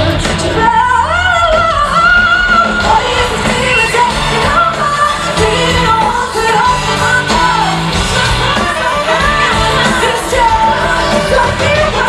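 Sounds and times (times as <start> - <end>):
amplified pop-rock band: 0.0 - 12.0
woman singing lead vocals: 0.0 - 12.0.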